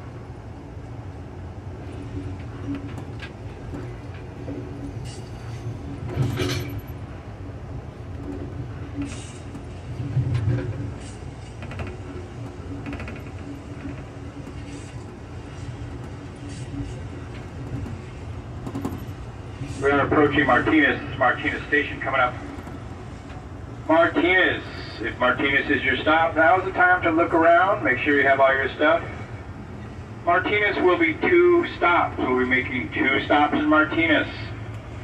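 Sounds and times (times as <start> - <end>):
train rumble: 0.0 - 35.0.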